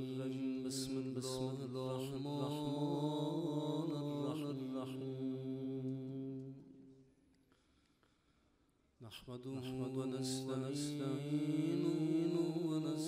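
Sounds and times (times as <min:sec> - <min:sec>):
melodic vocal chant: 0:00.0 - 0:06.6, 0:09.0 - 0:13.0.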